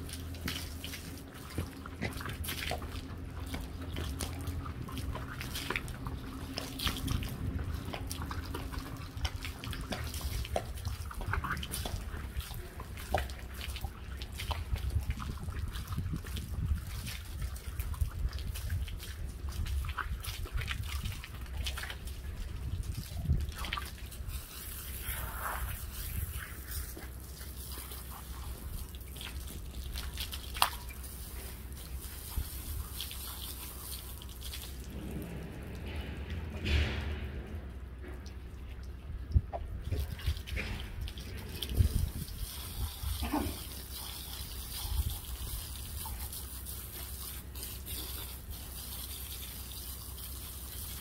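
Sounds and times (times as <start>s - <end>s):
low rumble: 0.0s - 26.8s, 34.5s - 43.4s
hands scrubbing wet coat: 0.0s - 35.4s, 39.9s - 51.0s
dripping water: 0.0s - 51.0s.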